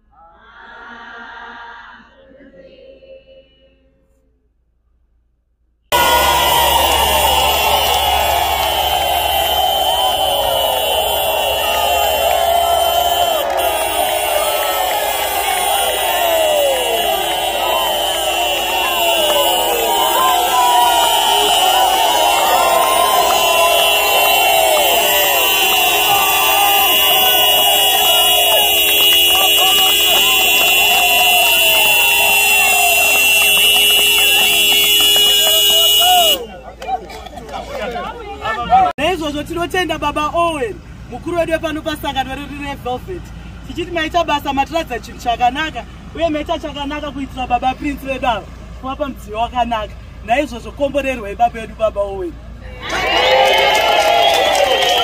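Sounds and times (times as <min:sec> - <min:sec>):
steady high tone: 0:05.9 - 0:36.2
crowd cheering and whooping: 0:05.9 - 0:38.9, 0:52.7 - 0:55.0.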